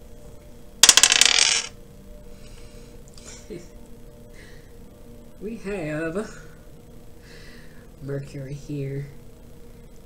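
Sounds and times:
dice clattering on glass: 0.8s - 1.7s.

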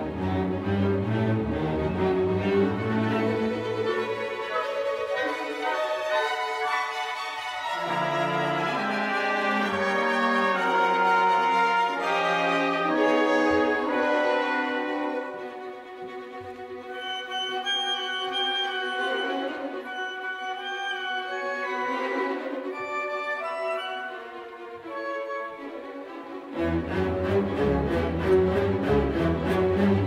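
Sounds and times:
strings sustained notes: 0.0s - 30.0s
brass chords: 7.8s - 15.6s.

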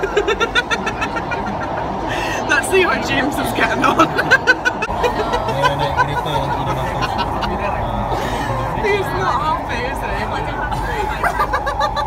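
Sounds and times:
people laughing hard: 0.0s - 2.5s, 3.8s - 9.1s, 10.7s - 12.0s
metro train rumble: 0.0s - 12.0s.

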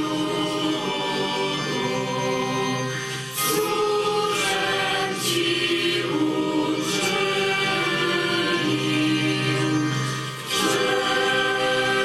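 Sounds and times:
choir singing a slow hymn: 0.0s - 12.0s.

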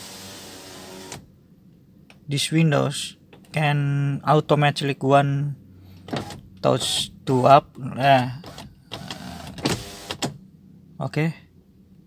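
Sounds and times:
power window motor whining: 0.0s - 1.3s, 8.4s - 10.4s.

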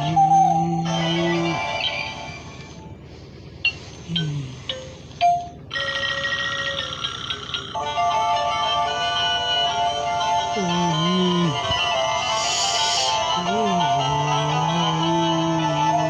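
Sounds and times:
tinny electronic toy tune: 3.7s - 16.0s.

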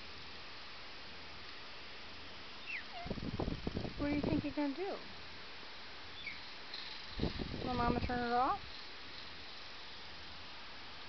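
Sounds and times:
cockatoo whistling: 2.6s - 3.1s.

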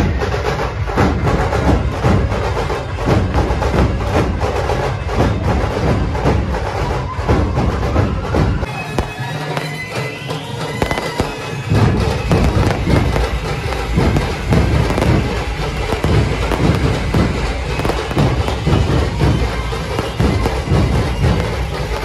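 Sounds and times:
firecrackers crackling and bursting: 8.6s - 22.0s
loud music with heavy beat: 10.8s - 22.0s.

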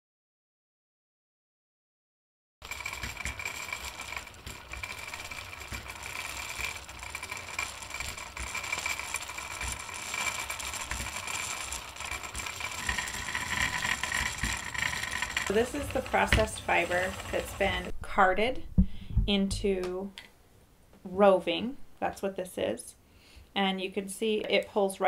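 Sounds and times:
wooden spinning wheel treadled: 2.6s - 18.5s.

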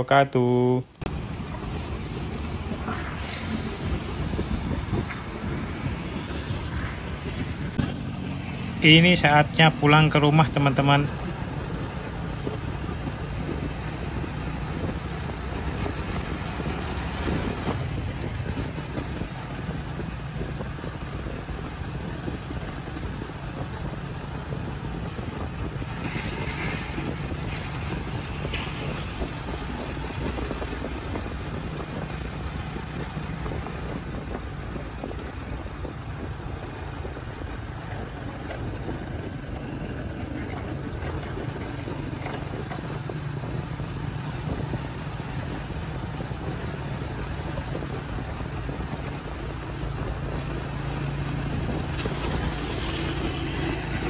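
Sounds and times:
road and wind noise: 0.0s - 54.0s
motorcycle engine cruising: 1.0s - 54.0s.

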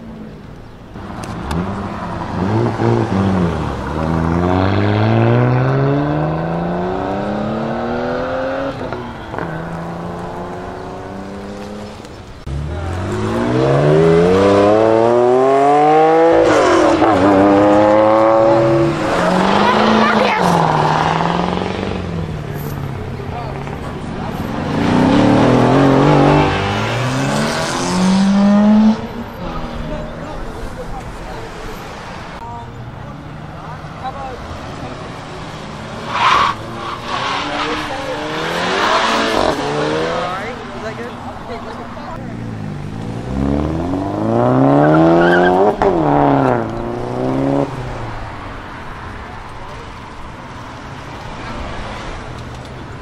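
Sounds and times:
car engine pulling away: 0.0s - 53.0s
hatchback engine revving: 1.0s - 11.9s, 12.5s - 29.2s, 35.2s - 41.1s, 42.2s - 48.0s
cars accelerating hard: 1.0s - 53.0s.

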